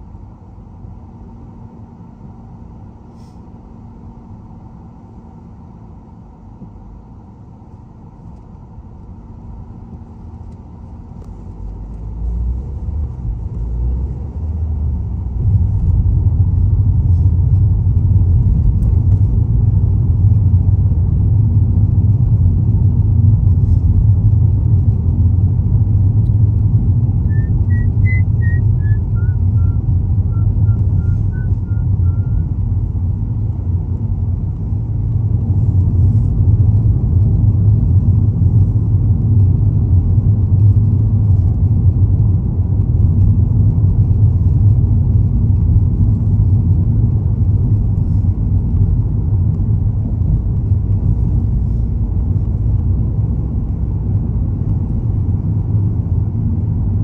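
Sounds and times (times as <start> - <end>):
car engine and road rumble: 0.0 - 57.0.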